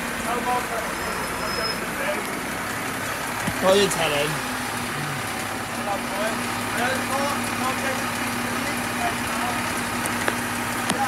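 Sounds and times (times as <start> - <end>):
lorry engine rumbling past: 0.0 - 11.0.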